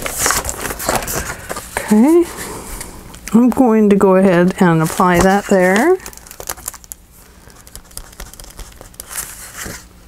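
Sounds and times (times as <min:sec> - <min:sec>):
paper rustling and crinkling: 0:00.0 - 0:01.9, 0:04.2 - 0:10.0.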